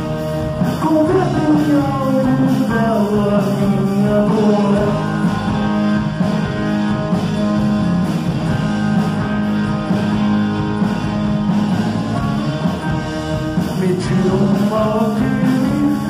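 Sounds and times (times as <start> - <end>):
drums: 0.0 - 16.0
electric guitars: 0.0 - 16.0.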